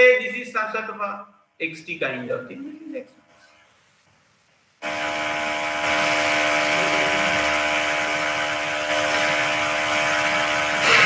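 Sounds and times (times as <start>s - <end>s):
loud steady buzzing: 4.8s - 11.0s.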